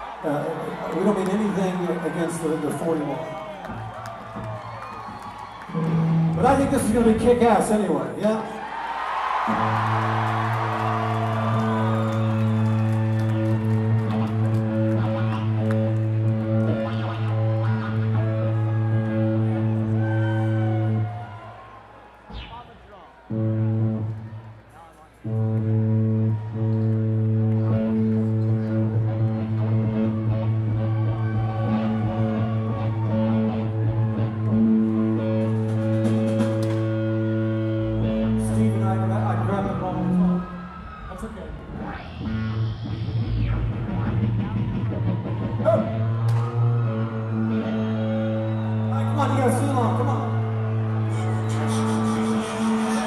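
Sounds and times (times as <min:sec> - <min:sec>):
faint crowd chatter: 0:13.7 - 0:42.4.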